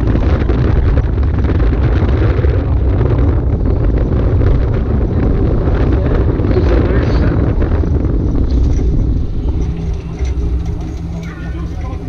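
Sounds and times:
cart wheels rumbling on asphalt: 0.0s - 12.0s
steady low hum: 0.0s - 12.0s.

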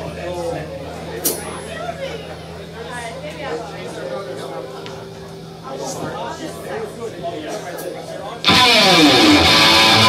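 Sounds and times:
rock band with distorted guitar: 8.4s - 10.0s.

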